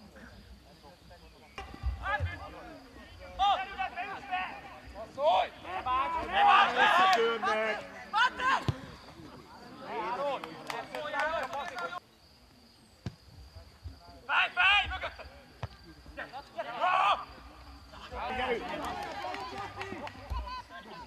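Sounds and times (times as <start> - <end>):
voices shouting and calling out: 0.0 - 12.1, 12.7 - 21.0.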